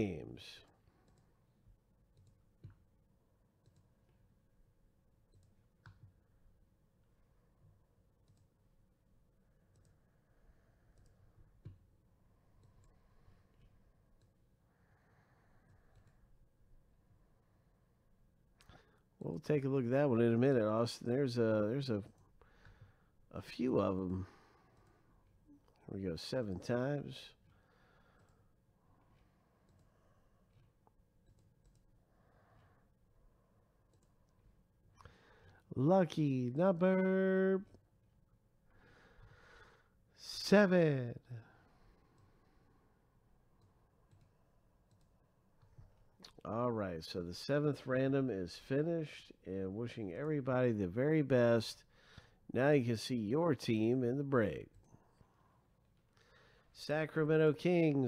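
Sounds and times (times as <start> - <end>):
computer mouse clicks: 1.0 - 1.3, 2.1 - 2.9, 3.6 - 4.1, 5.3 - 6.2, 7.6 - 8.5, 9.6 - 10.1, 10.9 - 11.9, 15.7 - 16.2, 29.6 - 29.9, 30.5 - 32.0, 33.8 - 34.5, 43.6 - 46.4.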